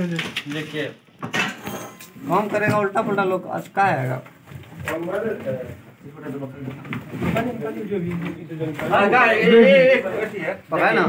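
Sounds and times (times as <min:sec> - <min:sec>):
men's voices talking: 0:00.0 - 0:01.1, 0:02.0 - 0:11.0.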